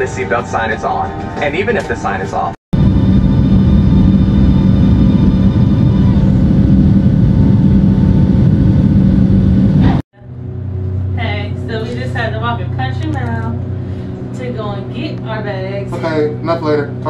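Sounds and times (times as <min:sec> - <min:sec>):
jet engine cabin roar: 0:00.0 - 0:17.0.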